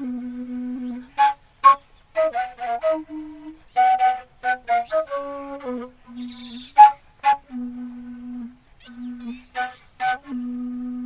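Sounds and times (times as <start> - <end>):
wooden flute played solo: 0.0 - 11.0.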